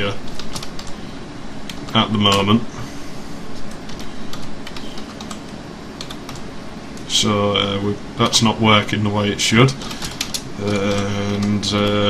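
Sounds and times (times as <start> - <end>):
typing on a computer keyboard: 0.3 - 1.0, 6.0 - 6.4, 9.7 - 11.6.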